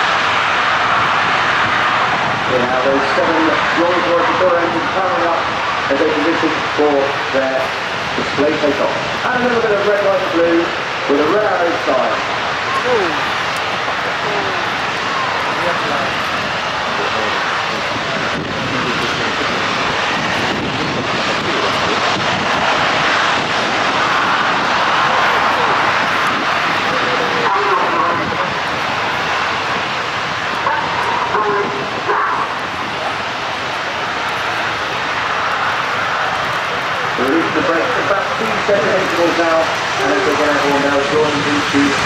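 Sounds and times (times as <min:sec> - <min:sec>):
jet engines running: 0:00.0 - 0:42.0
faint public-address commentary: 0:08.4 - 0:19.2.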